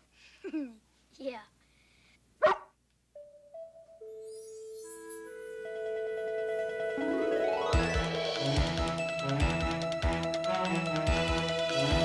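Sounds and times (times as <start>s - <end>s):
dog barking: 2.4s - 2.8s.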